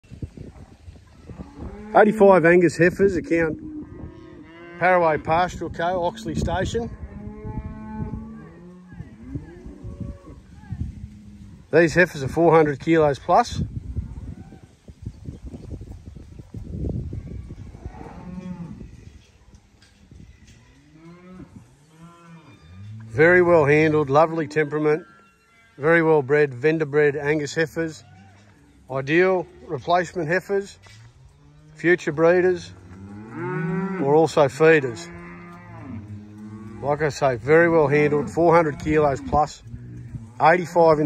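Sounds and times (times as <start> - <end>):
cows mooing: 1.3 - 10.4, 31.4 - 41.0
cow mooing: 34.9 - 40.8.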